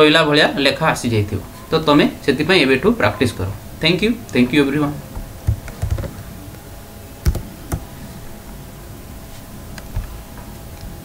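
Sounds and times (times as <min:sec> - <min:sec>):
steady low hum: 0:00.0 - 0:11.0
computer handling clicks and taps: 0:07.2 - 0:07.9.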